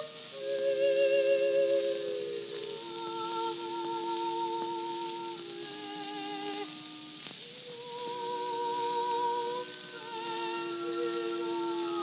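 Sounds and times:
accompanying tones: 0.0s - 12.0s
operatic soprano singing: 0.0s - 12.0s
record surface hiss: 0.0s - 12.0s.

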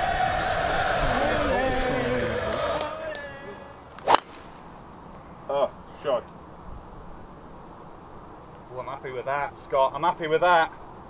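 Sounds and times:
golf driver striking ball: 4.0s - 4.8s.

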